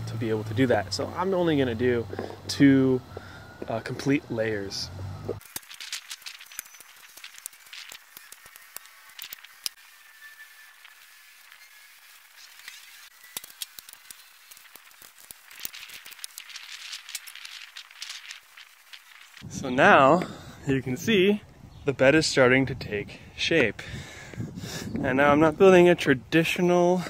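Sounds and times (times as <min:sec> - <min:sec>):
rustling in straw and compost: 0:10.7 - 0:19.4.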